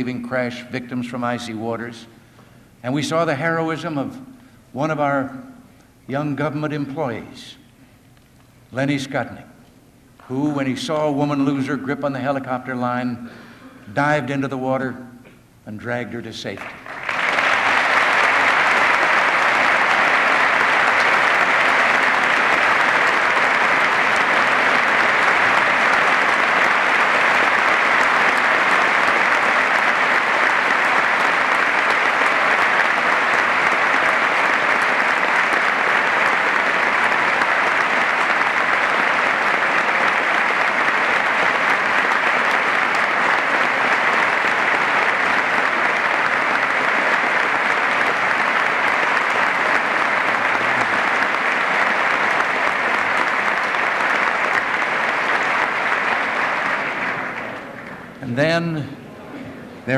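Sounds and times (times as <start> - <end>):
large audience applauding: 16.6 - 58.3.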